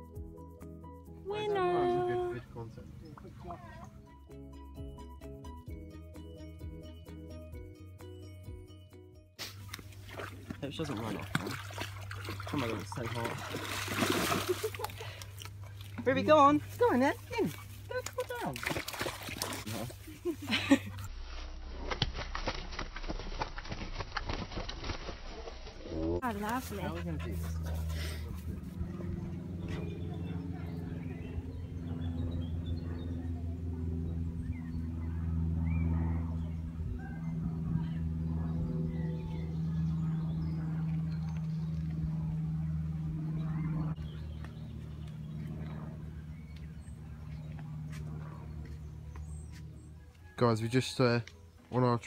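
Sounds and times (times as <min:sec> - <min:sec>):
dog splashing in water: 0:09.6 - 0:15.0, 0:17.5 - 0:20.0
voices: 0:25.9 - 0:42.0.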